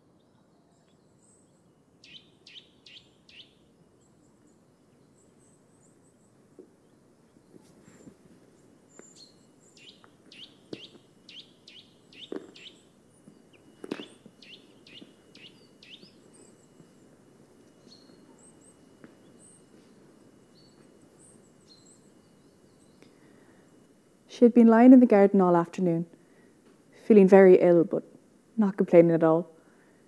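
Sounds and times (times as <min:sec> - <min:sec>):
bird chirping: 0:00.2 - 0:23.3.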